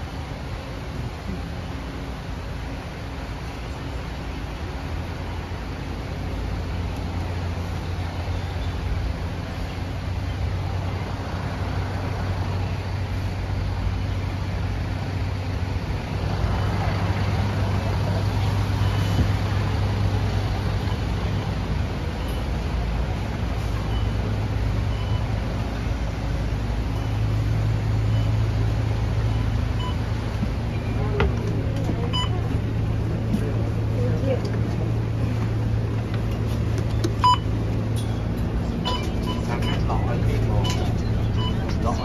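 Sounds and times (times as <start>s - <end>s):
bus engine idling: 0.0s - 42.0s
vehicle noise: 0.0s - 42.0s
short high beeps: 37.2s - 38.2s, 38.8s - 42.0s.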